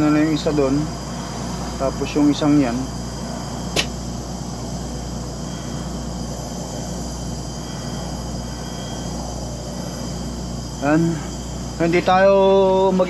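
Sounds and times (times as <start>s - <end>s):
insects chirring: 0.0s - 13.0s
sharp click: 3.7s - 4.0s.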